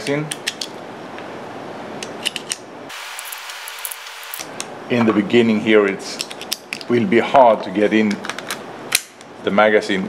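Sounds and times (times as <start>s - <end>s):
steady hiss: 2.9s - 4.6s.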